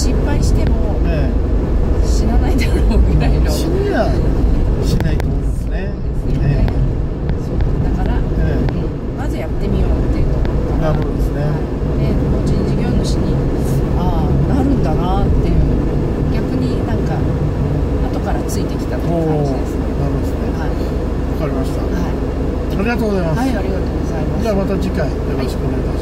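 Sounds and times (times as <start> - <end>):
people talking: 0.0 - 1.4, 2.0 - 17.4, 18.0 - 26.0
van road and engine rumble: 0.0 - 26.0.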